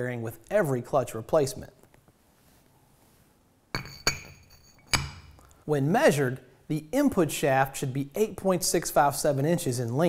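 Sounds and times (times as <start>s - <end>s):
metal clinks: 3.7s - 5.5s.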